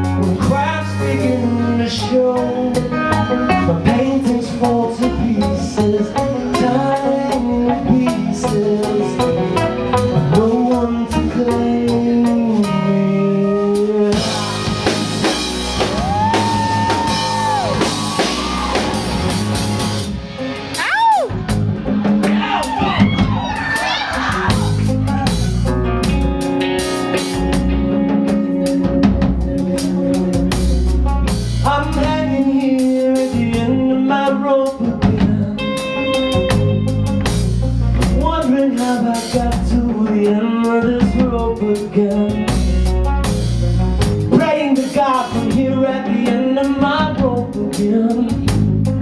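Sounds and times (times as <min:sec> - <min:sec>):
lead guitar bending notes: 0:00.0 - 0:23.4, 0:24.0 - 0:34.4, 0:35.0 - 0:38.6
deep bass: 0:00.0 - 0:49.0
drums: 0:00.0 - 0:49.0
live rock band playing: 0:00.0 - 0:49.0.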